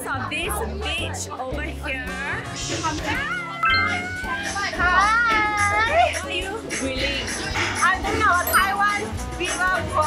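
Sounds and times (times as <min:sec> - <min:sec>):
background music with bass: 0:00.0 - 0:10.0.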